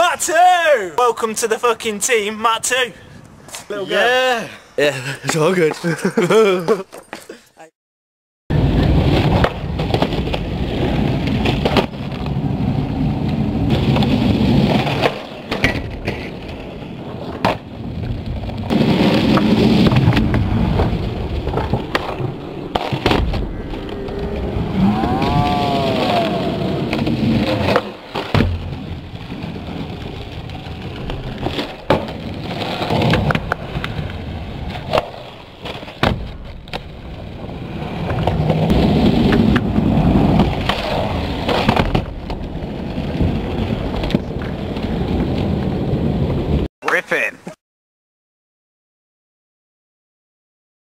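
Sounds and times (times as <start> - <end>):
skateboard wheels rolling on concrete: 0.0 - 7.4, 8.5 - 46.7
skateboard clacks: 18.6 - 24.4, 29.8 - 36.9.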